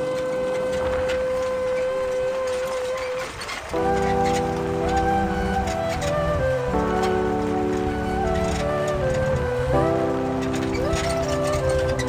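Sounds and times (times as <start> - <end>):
folk flute long notes: 0.0 - 12.0.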